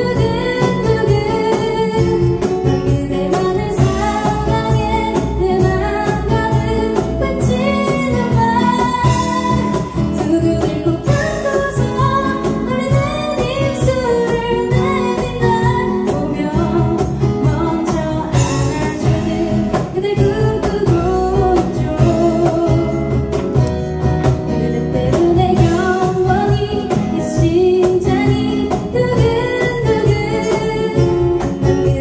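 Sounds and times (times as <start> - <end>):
acoustic band playing: 0.0 - 32.0
woman singing pop song: 0.0 - 32.0.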